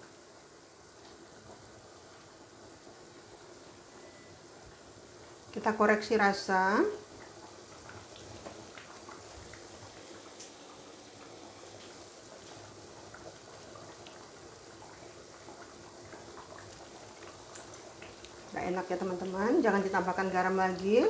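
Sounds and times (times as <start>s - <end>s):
curry bubbling in a pan: 0.0s - 21.0s.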